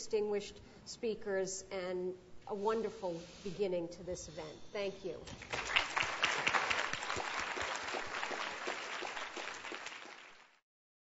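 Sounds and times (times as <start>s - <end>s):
audience applauding: 5.4s - 10.6s.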